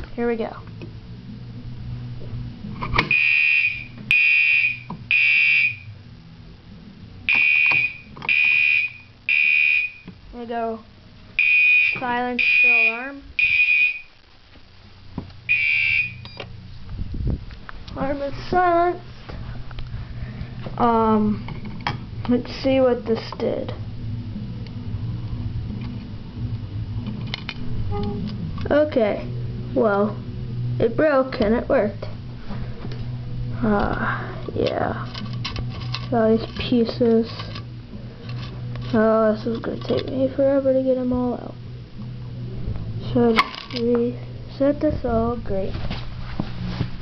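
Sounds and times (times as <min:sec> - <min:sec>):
steady low hum: 0:00.0 - 0:47.0
fire alarm horn blasts: 0:03.1 - 0:05.9, 0:07.3 - 0:10.1, 0:11.4 - 0:14.2, 0:15.5 - 0:16.3.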